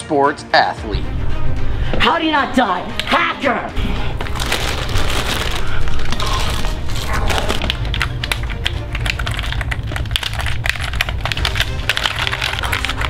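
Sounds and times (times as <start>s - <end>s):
background music: 0.0s - 13.0s
sharp clicks and cracks: 7.6s - 13.0s.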